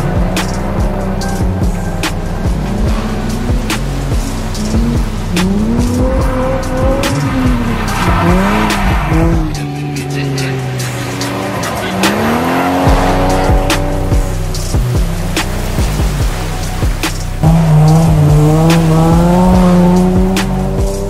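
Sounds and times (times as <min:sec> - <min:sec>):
background music with bass beat: 0:00.0 - 0:21.0
car engine revving: 0:00.0 - 0:21.0.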